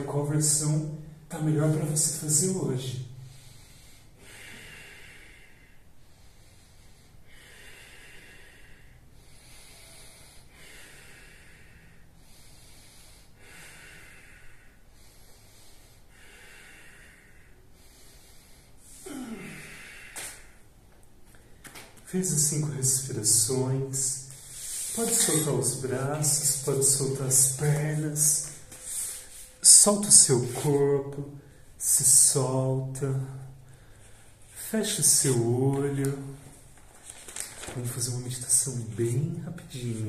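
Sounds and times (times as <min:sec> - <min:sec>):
man breathing deeply: 0:03.1 - 0:30.8, 0:33.2 - 0:34.6
voiced exhale: 0:03.2 - 0:20.6, 0:24.2 - 0:25.8, 0:28.4 - 0:29.8.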